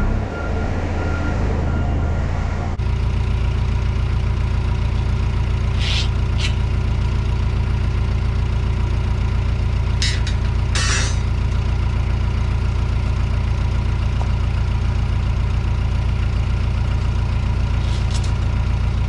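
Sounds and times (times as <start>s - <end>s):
construction machine engine idling: 0.0s - 19.0s.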